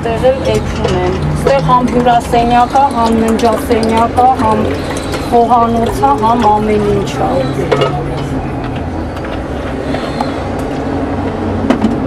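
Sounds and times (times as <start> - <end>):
water poured into metal pan: 0.4 - 7.5.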